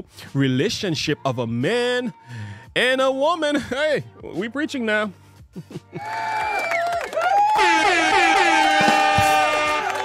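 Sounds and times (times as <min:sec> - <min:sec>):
man laughing: 0:05.6 - 0:06.2
air horn blast: 0:07.6 - 0:10.0.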